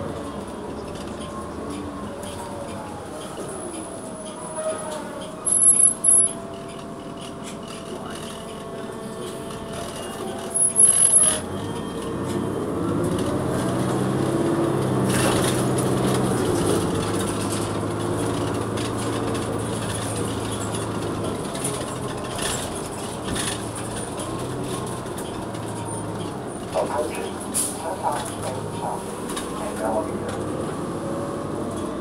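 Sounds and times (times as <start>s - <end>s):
bus engine accelerating: 0.0s - 32.0s.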